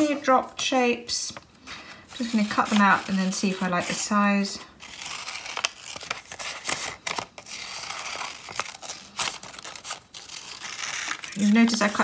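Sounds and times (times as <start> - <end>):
paper rustling: 1.7 - 12.0
scissors snipping paper: 2.2 - 12.0.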